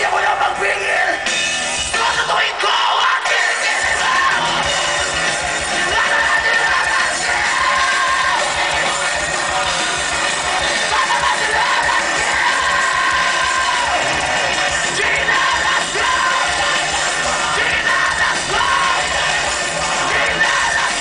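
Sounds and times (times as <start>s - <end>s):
audience yelling and singing: 0.0s - 21.0s
live rock band playing: 0.0s - 21.0s.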